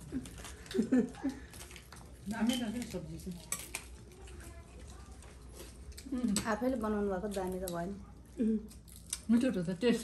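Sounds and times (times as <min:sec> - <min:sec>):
dishes and cutlery clinking: 0:01.8 - 0:03.9.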